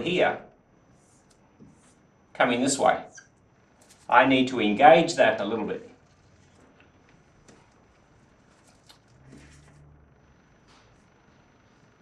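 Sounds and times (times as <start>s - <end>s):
low hum: 0.0s - 12.0s
cloth rubbing on whiteboard: 0.9s - 2.0s.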